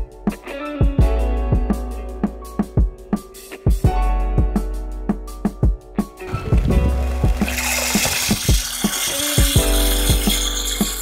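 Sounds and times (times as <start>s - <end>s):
background music with beat: 0.0s - 11.0s
rice pouring into water: 6.9s - 11.0s.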